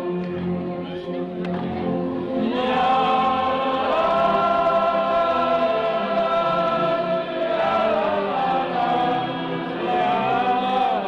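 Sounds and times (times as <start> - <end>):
wind band playing held chords: 0.0 - 11.0.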